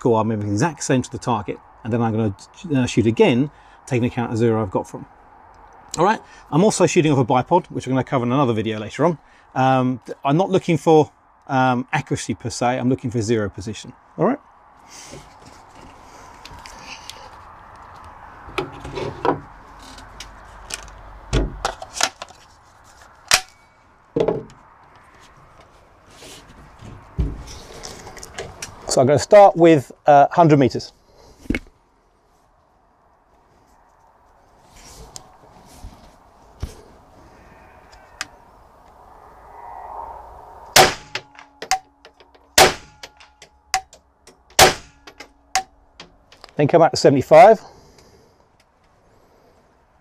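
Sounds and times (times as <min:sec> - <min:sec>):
loud metallic snap: 0:40.7 - 0:45.8
rifle shots: 0:40.8 - 0:41.4, 0:42.6 - 0:43.1, 0:44.6 - 0:45.0.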